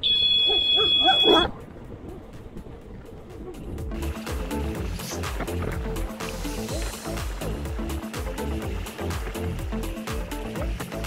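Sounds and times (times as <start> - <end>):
dog barking: 0.2 - 1.5.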